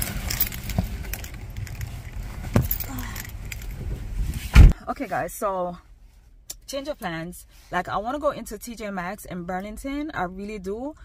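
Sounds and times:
keys jangling: 0.0s - 3.8s
dull thump: 2.4s - 2.9s.

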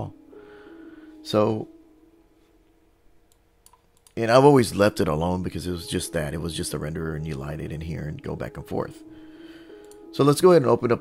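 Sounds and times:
faint computer mouse clicks: 9.8s - 10.0s.

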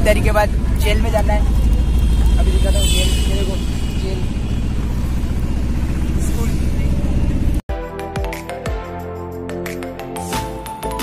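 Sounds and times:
engine and road rumble: 0.0s - 7.7s.

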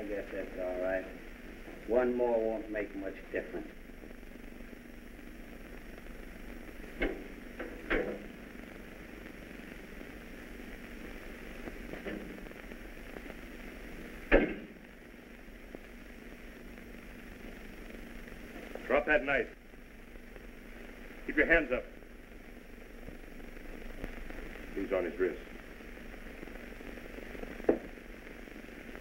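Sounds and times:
old film soundtrack hiss: 0.0s - 29.0s.

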